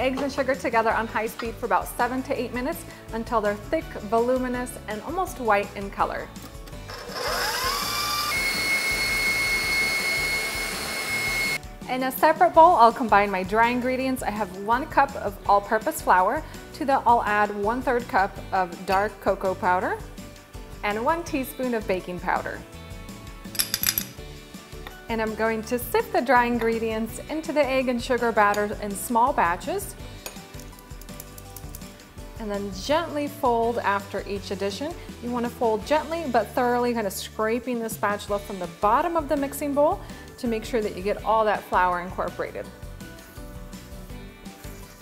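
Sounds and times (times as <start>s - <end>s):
soft background music: 0.0s - 45.0s
sieve and spoon clinking: 23.5s - 24.2s.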